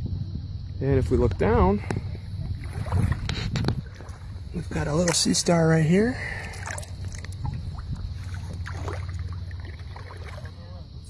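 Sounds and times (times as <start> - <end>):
steady low rumble: 0.0 - 11.0
faint water drips and splashes: 1.7 - 10.9.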